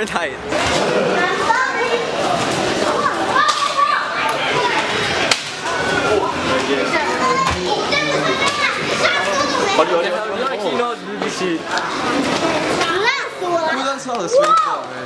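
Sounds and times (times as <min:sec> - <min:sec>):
children playing: 0:00.0 - 0:15.0.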